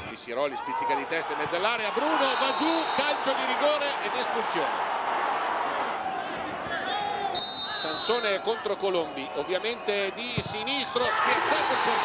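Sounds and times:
stadium crowd hubbub: 0:00.0 - 0:12.0.

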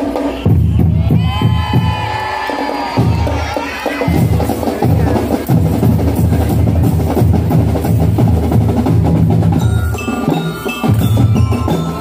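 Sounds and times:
crowd cheering: 0:00.0 - 0:05.2, 0:09.8 - 0:12.0
drumline bass and snare drums: 0:00.0 - 0:12.0.

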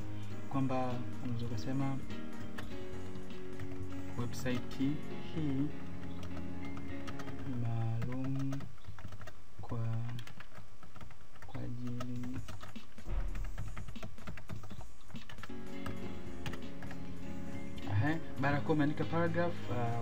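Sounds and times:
background music: 0:00.0 - 0:08.6, 0:11.6 - 0:20.0
fast typing on keyboard: 0:00.5 - 0:17.1.

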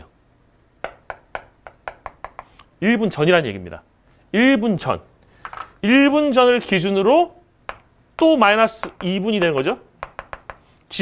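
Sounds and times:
chalk tapping on a chalkboard: 0:00.8 - 0:02.5, 0:07.7 - 0:09.2, 0:10.0 - 0:10.7.

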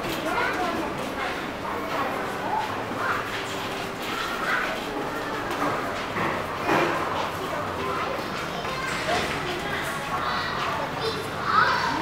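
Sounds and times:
indistinct talking voices: 0:00.0 - 0:12.0.

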